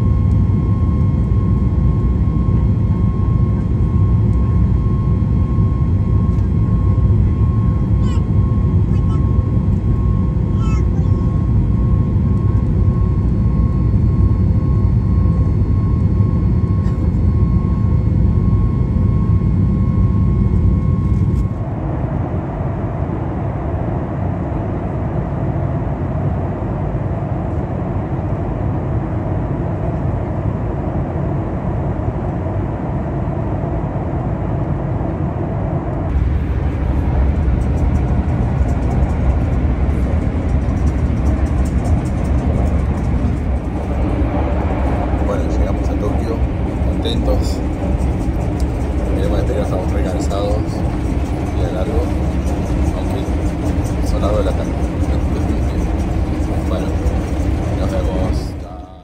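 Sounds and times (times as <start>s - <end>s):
airliner cabin rumble: 0.0s - 59.0s
faint steady whine: 0.0s - 59.0s.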